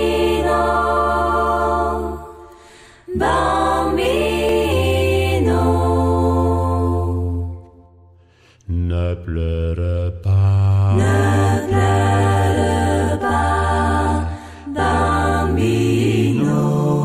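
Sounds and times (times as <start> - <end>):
vocal group singing harmony: 0.0 - 17.0.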